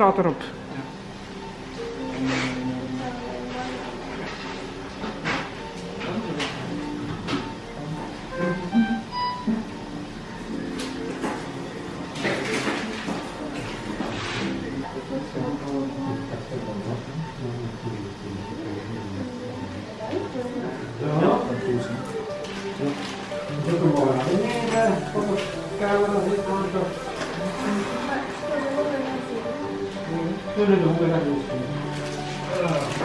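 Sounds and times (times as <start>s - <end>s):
background music with held notes: 0.0s - 33.0s
short electronic beeps: 8.3s - 9.8s.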